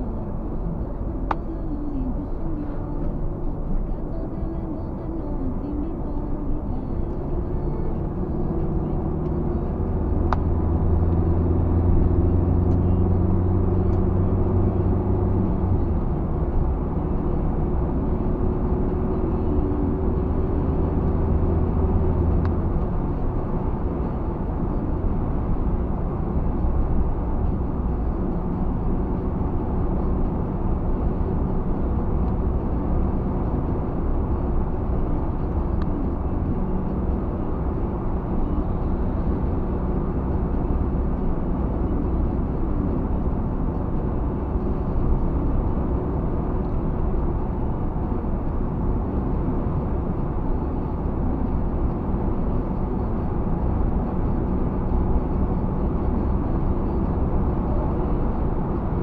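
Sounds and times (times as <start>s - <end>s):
car engine drone: 0.0s - 59.0s
tyre road noise: 0.0s - 59.0s.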